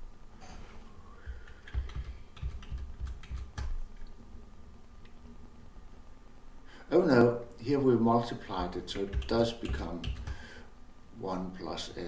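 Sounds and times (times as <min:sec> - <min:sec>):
computer keyboard clicks: 0:01.3 - 0:03.8, 0:09.0 - 0:10.4.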